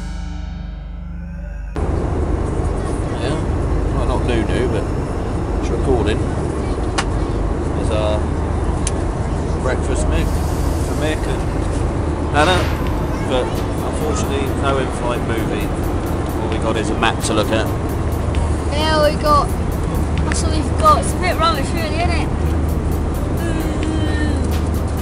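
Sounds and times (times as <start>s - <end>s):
music: 0.0s - 1.8s, 12.7s - 25.0s
airliner cabin hum: 0.0s - 25.0s
passengers chattering faintly: 2.5s - 15.6s.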